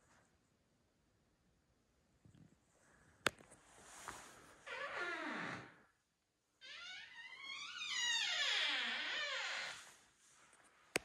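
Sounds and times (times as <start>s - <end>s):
door hinges creaking: 6.7s - 9.8s.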